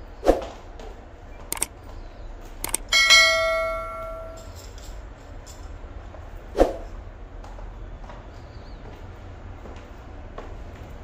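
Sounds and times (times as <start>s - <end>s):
mouse clicks: 1.5s - 1.7s
bell ding: 2.9s - 4.6s.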